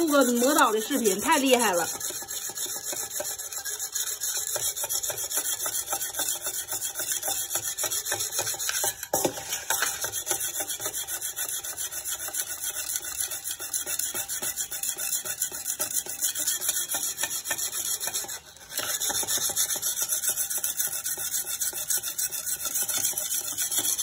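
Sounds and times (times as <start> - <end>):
whetstone rasping on knife blade: 0.0 - 24.0.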